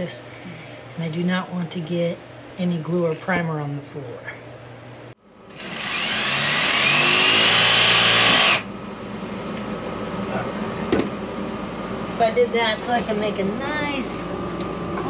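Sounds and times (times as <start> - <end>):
steady hum: 0.0 - 15.0
power saw cutting plastic pipe: 5.5 - 8.7.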